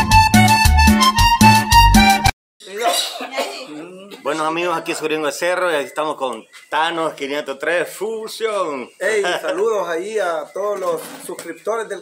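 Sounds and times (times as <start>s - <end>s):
upbeat intro music: 0.0s - 2.3s
man coughing: 2.7s - 4.4s.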